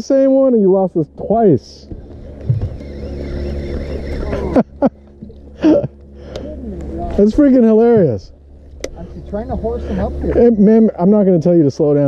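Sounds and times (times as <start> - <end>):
low rumble: 0.0 - 11.6
fishing reel whirring: 1.9 - 7.4
person laughing: 2.8 - 6.0.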